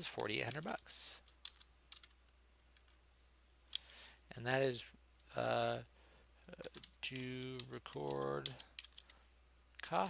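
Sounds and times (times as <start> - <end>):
keyboard keystrokes: 6.6 - 9.1.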